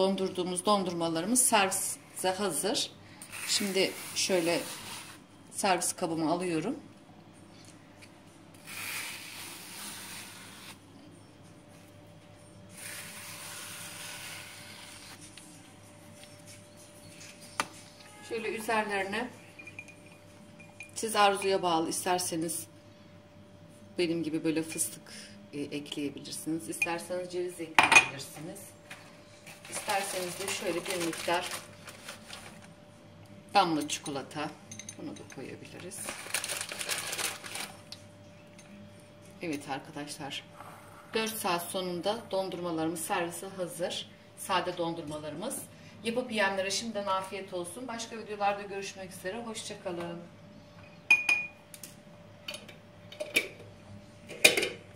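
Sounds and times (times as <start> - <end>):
ice cream scoop scraping: 3.3 - 5.2, 8.6 - 11.0, 12.7 - 15.4
crinkling rustle: 29.5 - 32.7, 36.0 - 37.9.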